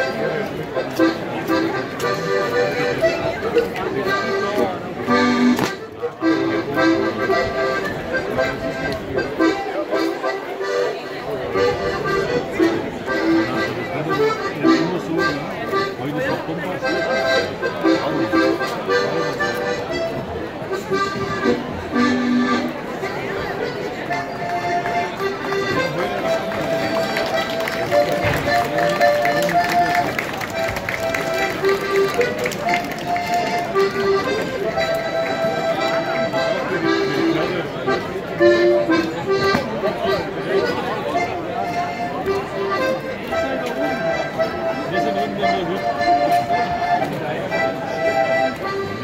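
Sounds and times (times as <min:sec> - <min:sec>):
accordion folk dance tune: 0:00.0 - 0:49.0
crowd voices: 0:00.0 - 0:49.0.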